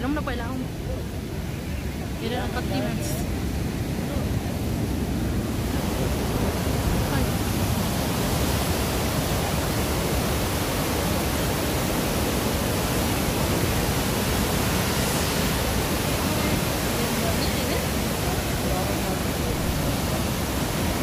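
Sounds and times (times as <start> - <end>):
river rushing through rapids: 0.0 - 21.0.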